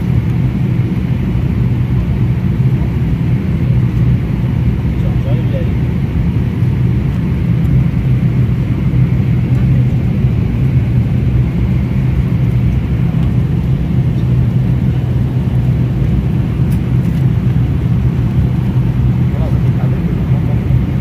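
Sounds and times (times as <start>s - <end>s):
jet engine drone: 0.0s - 21.0s.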